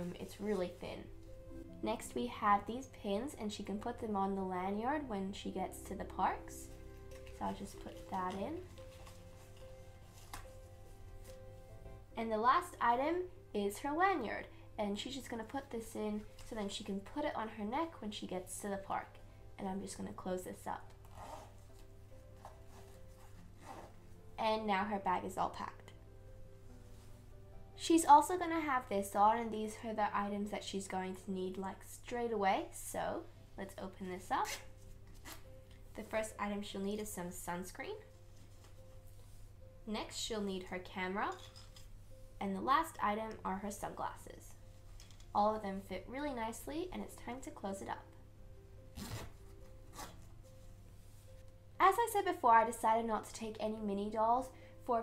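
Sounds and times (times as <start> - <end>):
quiet background music: 0.0 - 55.0
small zipper closing: 21.0 - 21.8, 22.4 - 24.0, 48.9 - 50.3.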